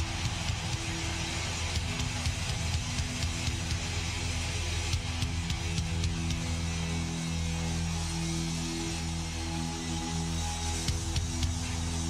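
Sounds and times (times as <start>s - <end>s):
arena crowd noise: 0.0s - 12.0s.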